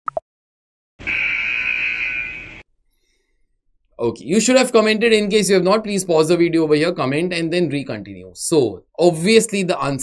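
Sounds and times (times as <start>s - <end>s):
time's-up buzzer: 1.0s - 2.7s.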